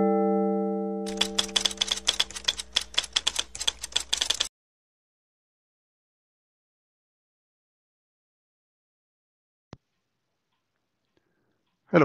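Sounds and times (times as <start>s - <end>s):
mallet percussion chord: 0.0s - 1.0s
rapid typing keystroke clicks: 1.1s - 4.5s.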